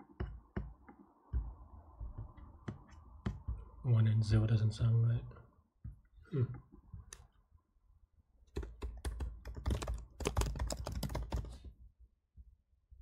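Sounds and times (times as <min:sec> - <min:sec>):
typing on computer keyboard: 0:08.5 - 0:11.7.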